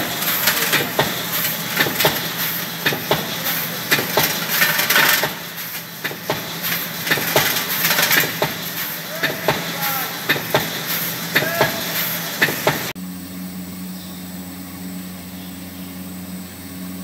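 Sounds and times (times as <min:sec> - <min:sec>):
machine clicks and knocks: 0:00.0 - 0:11.8
hissing burst: 0:00.0 - 0:13.0
machine hum: 0:00.0 - 0:17.0.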